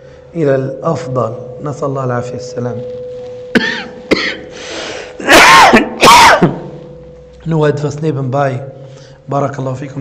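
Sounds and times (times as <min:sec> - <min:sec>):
people shouting: 0:05.2 - 0:06.5
short cry: 0:05.2 - 0:06.7.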